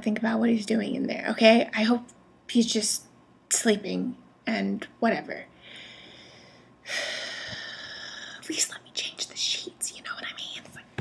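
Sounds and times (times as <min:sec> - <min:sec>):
person whispering: 0:08.4 - 0:11.0.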